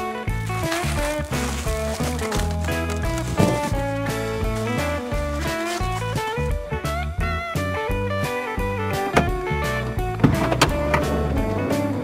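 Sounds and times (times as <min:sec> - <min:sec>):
guitar tune with beat: 0:00.0 - 0:12.0.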